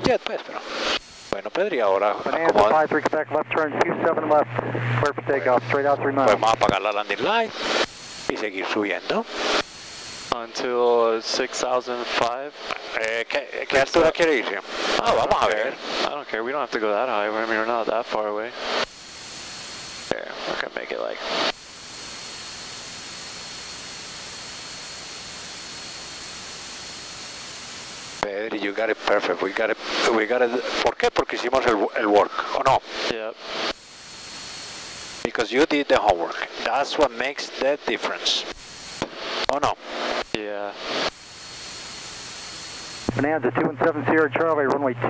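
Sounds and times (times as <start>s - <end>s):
static hiss on headset intercom: 0.0s - 45.0s.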